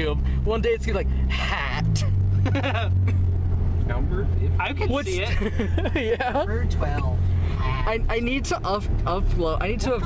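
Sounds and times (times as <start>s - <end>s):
car interior drone: 0.0s - 10.0s
person laughing: 2.4s - 3.2s, 5.2s - 6.6s.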